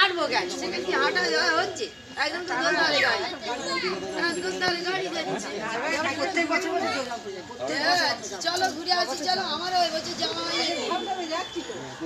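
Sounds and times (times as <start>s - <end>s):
people and children chattering: 0.0s - 12.0s.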